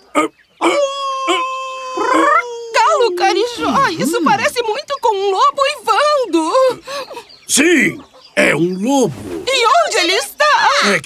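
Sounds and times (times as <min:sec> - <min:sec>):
wolf howling: 0:00.2 - 0:04.4.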